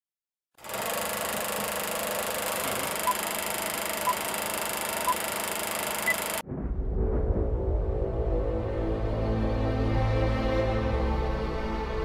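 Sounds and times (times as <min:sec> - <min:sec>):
film projector whirring rattle: 0:00.6 - 0:06.4
short beeps: 0:04.0 - 0:05.4, 0:06.0 - 0:06.4.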